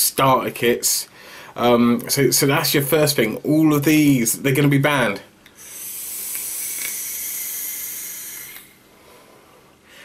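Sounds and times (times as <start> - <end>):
faint exhale: 1.1 - 1.6, 5.6 - 10.0
airy hiss of vape drag: 5.6 - 8.8.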